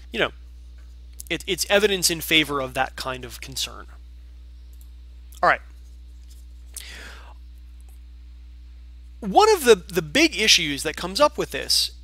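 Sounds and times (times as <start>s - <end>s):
low electrical hum: 0.0s - 12.0s
man breathing: 6.8s - 7.4s.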